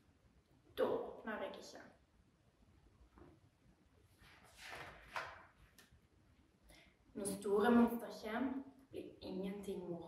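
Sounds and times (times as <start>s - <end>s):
page turning rustle: 4.2s - 6.0s.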